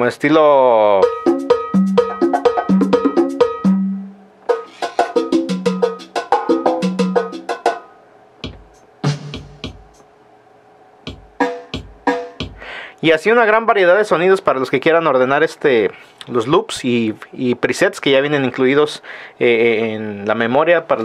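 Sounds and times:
deep bass drum thumps: 0:11.1 - 0:12.6.

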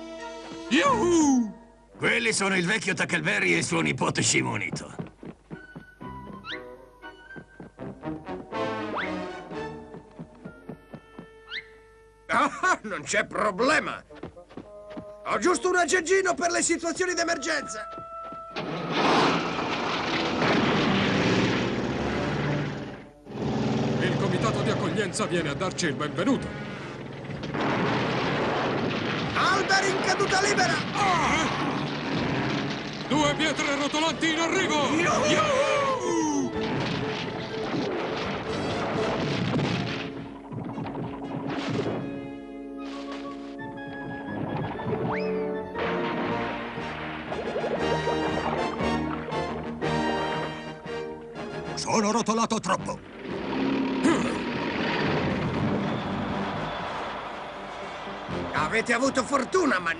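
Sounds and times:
heavy engine rumble: 0:19.4 - 0:29.3
cartoon rushing rumble: 0:52.8 - 0:56.8.

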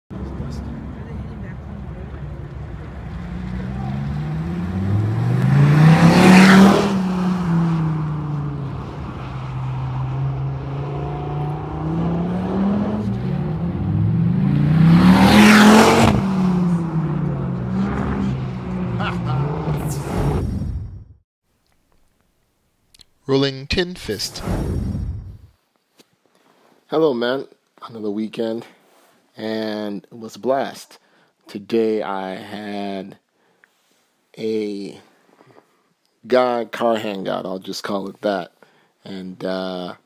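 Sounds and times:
car engine accelerating: 0:00.2 - 0:21.1.

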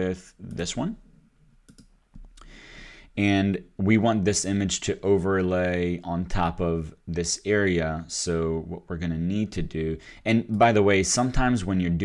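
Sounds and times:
computer mouse clicks: 0:01.6 - 0:02.4.

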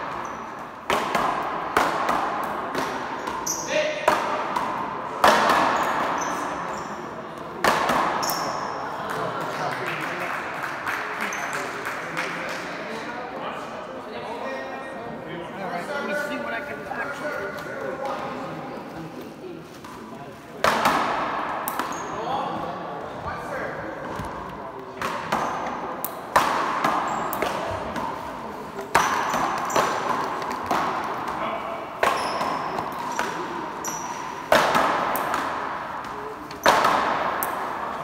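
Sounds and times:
sneaker squeaks on court floor: 0:00.0 - 0:00.8, 0:03.2 - 0:03.9, 0:05.7 - 0:07.1, 0:08.1 - 0:08.8, 0:21.8 - 0:22.2, 0:27.0 - 0:28.2, 0:28.9 - 0:30.5, 0:32.0 - 0:34.5
ball smacking off paddles and wall: 0:00.0 - 0:06.4, 0:07.6 - 0:09.2, 0:20.6 - 0:22.1, 0:24.1 - 0:38.0.

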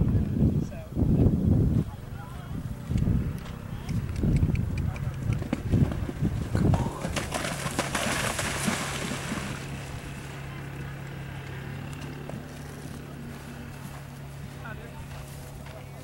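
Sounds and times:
hooves splashing through water: 0:03.4 - 0:16.0.

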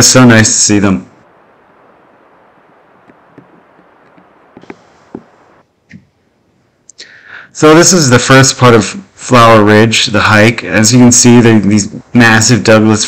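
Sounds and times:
forest ambience hiss: 0:00.0 - 0:13.0
light ticks and clicks: 0:03.0 - 0:05.3.

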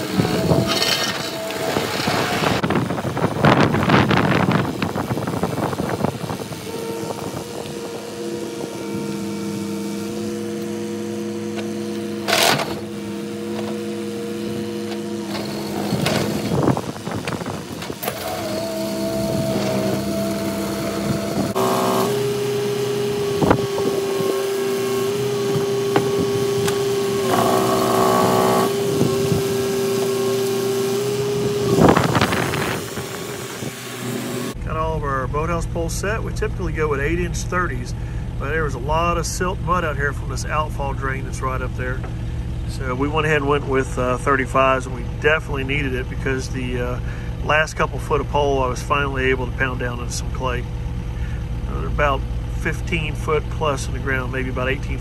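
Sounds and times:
excavator engine and hydraulics whine: 0:00.0 - 0:55.0.

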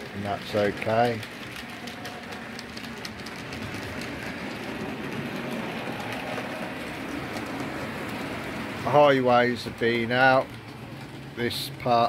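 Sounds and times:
model train motor whirring: 0:00.0 - 0:12.0
wheels clicking over rail joints: 0:00.0 - 0:12.0.

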